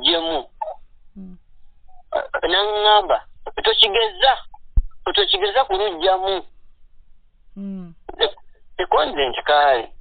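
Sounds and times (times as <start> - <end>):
person talking: 0.0 - 1.4, 2.1 - 6.5, 7.6 - 10.0.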